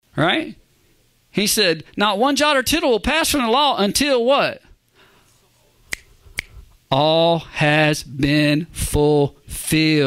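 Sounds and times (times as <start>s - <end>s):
finger snaps: 5.9s - 6.6s.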